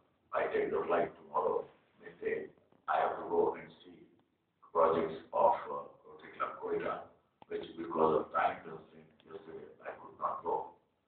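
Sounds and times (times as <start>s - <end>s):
man speaking through microphone: 0.4s - 10.7s.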